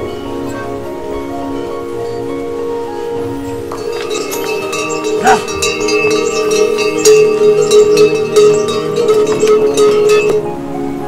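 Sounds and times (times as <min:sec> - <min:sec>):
metal bells clanking and ringing: 0:03.6 - 0:10.6.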